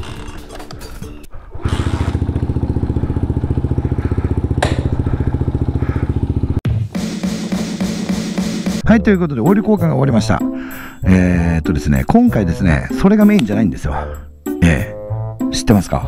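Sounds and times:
small motorcycle engine putter: 0.0 - 5.1
background music: 6.7 - 16.0.

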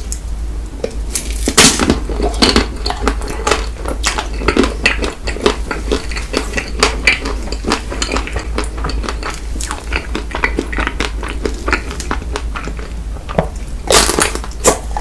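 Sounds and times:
chewing crunchy ice cream bar: 1.2 - 15.0.

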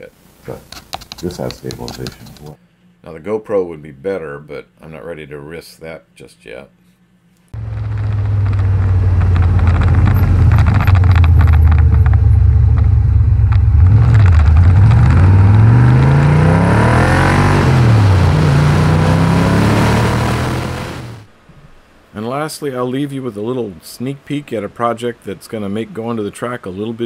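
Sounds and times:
car engine revving: 7.6 - 21.3.

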